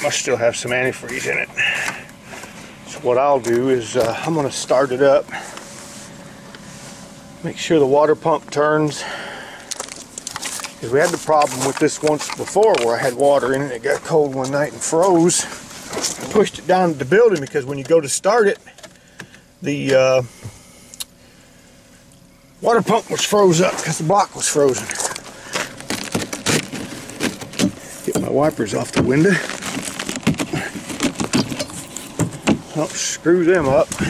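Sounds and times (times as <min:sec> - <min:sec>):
sharp clicks and crunches: 0:09.6 - 0:20.0, 0:22.8 - 0:34.0.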